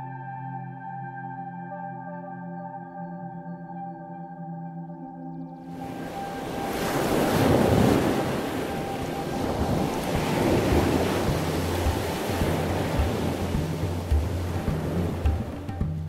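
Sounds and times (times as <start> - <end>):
ocean waves washing in: 5.7 - 15.8
music with low bass notes: 9.4 - 16.0.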